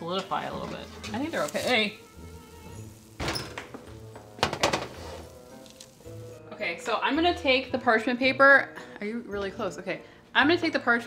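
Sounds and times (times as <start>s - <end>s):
soft background music: 0.0s - 11.0s
metal pan knocking on stone: 3.2s - 5.0s.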